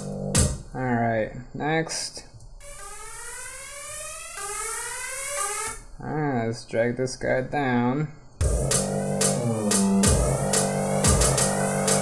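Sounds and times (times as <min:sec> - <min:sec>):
buzzy synth riser: 0:00.0 - 0:00.6, 0:02.6 - 0:05.8, 0:08.4 - 0:12.0.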